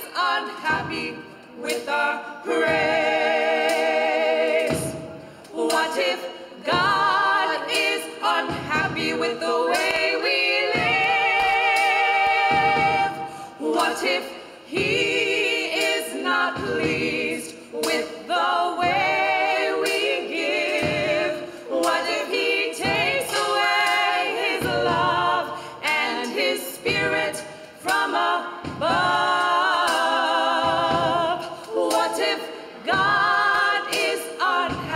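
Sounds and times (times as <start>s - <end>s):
women's choir singing a cappella: 0.0s - 34.9s
singers breathing: 5.2s - 5.5s, 13.2s - 13.6s, 14.3s - 14.7s, 21.4s - 21.7s, 25.5s - 25.8s, 27.4s - 27.8s.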